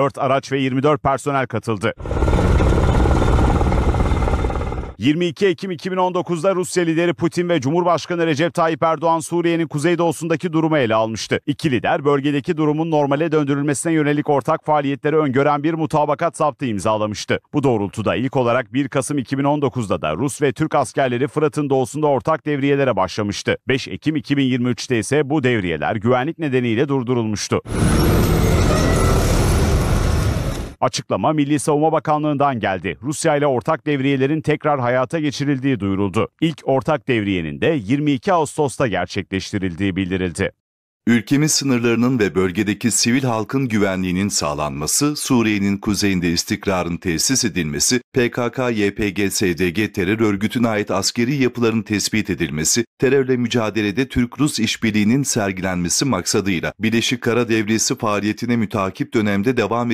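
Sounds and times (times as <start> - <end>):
armoured vehicle engine rumble: 2.0 - 5.0, 27.7 - 30.8
road noise: 27.7 - 30.8.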